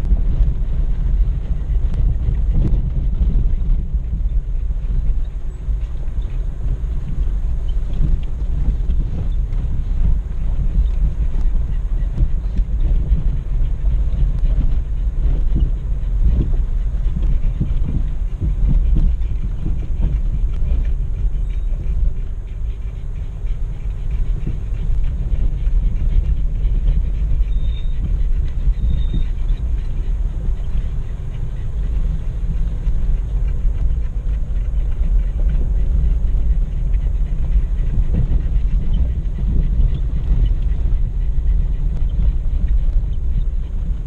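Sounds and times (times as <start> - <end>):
low rumble of engine and tyres: 0.0 - 44.0.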